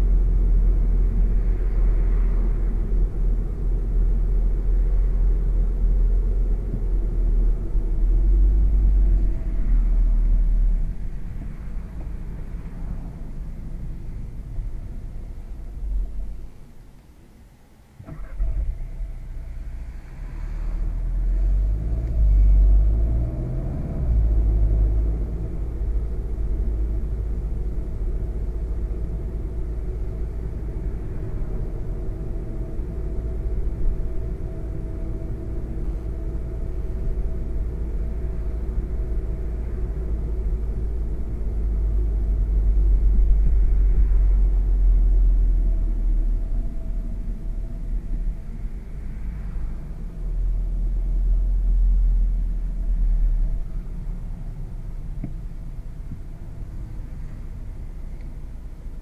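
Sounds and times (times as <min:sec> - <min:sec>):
car engine rumble from cabin: 0:00.0 - 0:59.0
road noise: 0:00.0 - 0:59.0.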